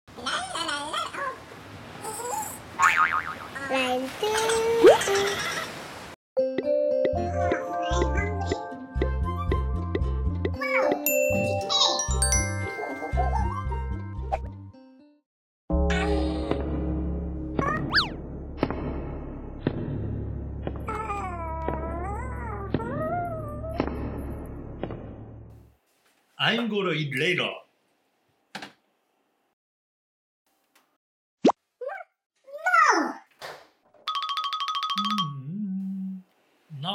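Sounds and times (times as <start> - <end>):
cartoon boing sound effect: 2.8 - 3.5, 17.6 - 18.2, 34.1 - 35.8.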